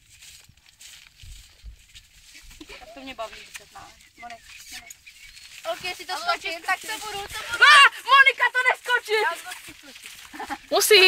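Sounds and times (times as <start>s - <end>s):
hooves thudding on grass: 0.0s - 11.0s.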